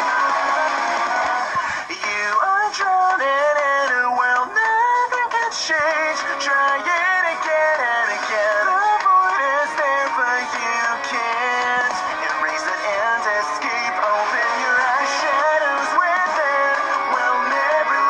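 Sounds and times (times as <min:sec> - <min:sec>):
musical backing: 0:00.0 - 0:18.0
synthesized voice singing: 0:00.0 - 0:18.0.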